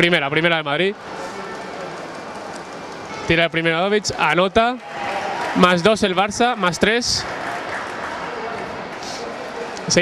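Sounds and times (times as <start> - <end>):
sports hall murmur: 0.0 - 10.0.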